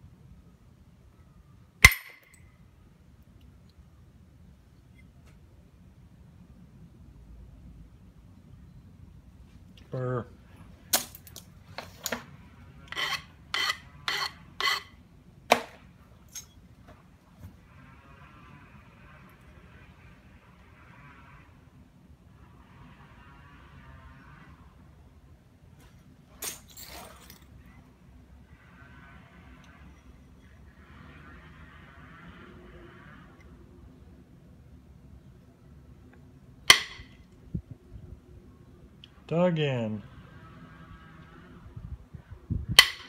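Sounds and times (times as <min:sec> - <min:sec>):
gritty scraping on stone: 0:12.9 - 0:15.0
stone tool striking stone: 0:36.7 - 0:37.1.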